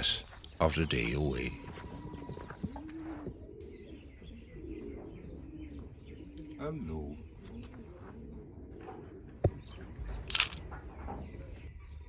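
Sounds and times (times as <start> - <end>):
bird giving low calls: 0.0 - 9.3.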